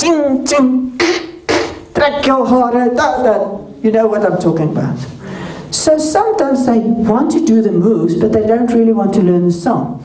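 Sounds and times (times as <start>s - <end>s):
woman beatboxing: 0.0s - 2.0s.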